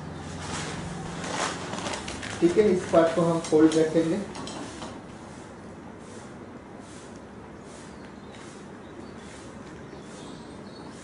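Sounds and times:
paper rustling: 0:00.3 - 0:04.0
paper crackling: 0:00.5 - 0:03.4.

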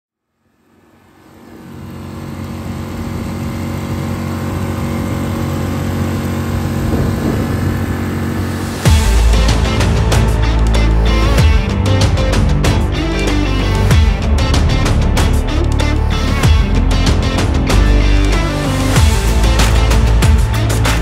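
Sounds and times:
outboard motor running: 0:00.6 - 0:21.0
loud music with a beat: 0:08.8 - 0:21.0.

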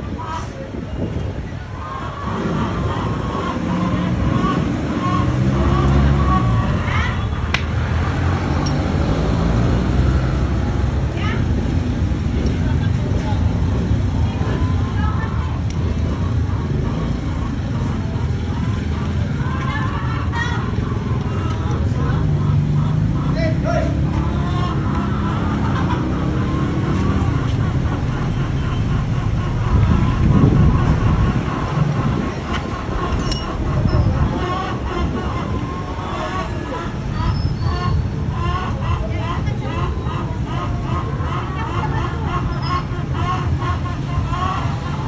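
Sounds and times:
chatter of voices: 0:00.0 - 0:45.0
vehicle engines running: 0:00.0 - 0:45.0.

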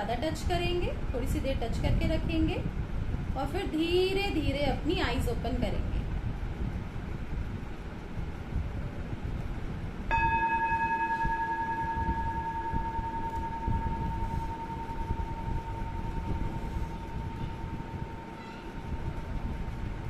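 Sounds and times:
singing bowl ringing: 0:10.1 - 0:20.0.

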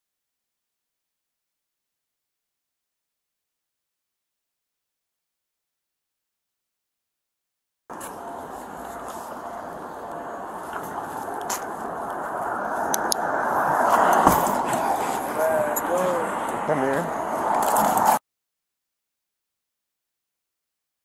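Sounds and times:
rustling on microphone: 0:07.9 - 0:16.6
muffled voice sounds: 0:14.8 - 0:17.2.

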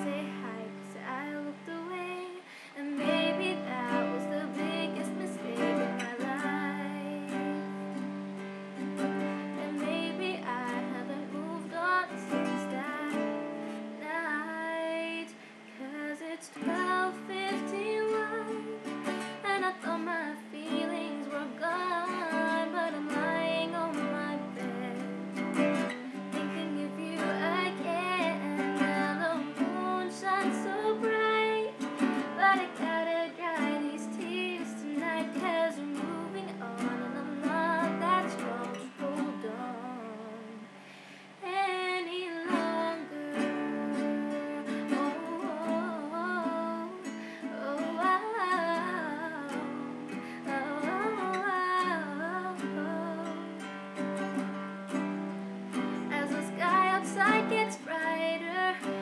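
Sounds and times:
woman singing: 0:00.0 - 0:40.8, 0:41.4 - 0:59.0
strummed acoustic guitar: 0:02.8 - 0:15.7, 0:16.5 - 0:41.6, 0:42.4 - 0:59.0.

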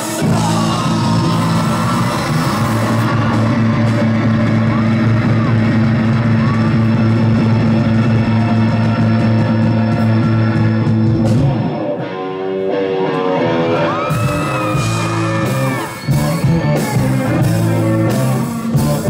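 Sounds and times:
loud live rock music: 0:00.0 - 0:19.0
sliding guitar notes: 0:00.0 - 0:19.0.

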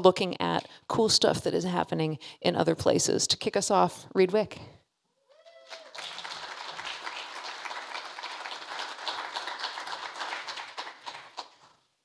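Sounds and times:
audience applauding: 0:05.6 - 0:11.8.

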